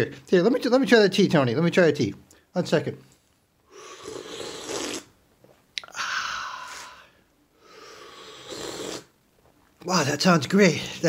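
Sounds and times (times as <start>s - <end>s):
man slurping hot tea: 3.7s - 5.2s, 6.6s - 9.2s.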